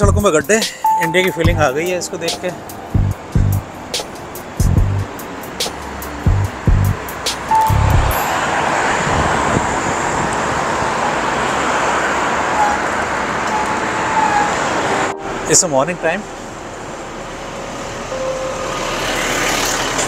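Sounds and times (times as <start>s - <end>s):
road traffic passing: 0.0s - 20.0s
music with thumping beat: 1.4s - 1.7s, 2.4s - 8.1s.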